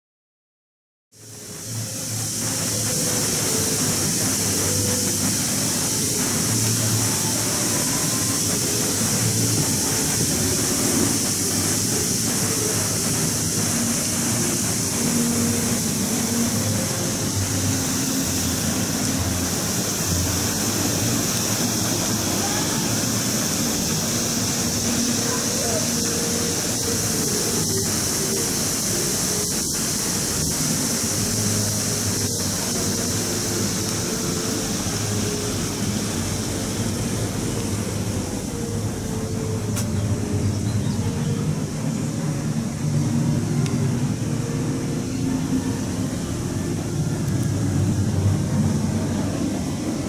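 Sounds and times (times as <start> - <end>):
constant high hiss: 1.2 - 50.0.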